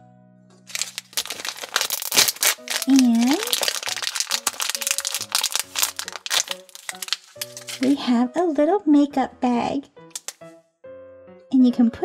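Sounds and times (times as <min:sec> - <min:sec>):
soft background music: 0:00.0 - 0:12.0
plastic wrapper crackling: 0:00.7 - 0:08.0.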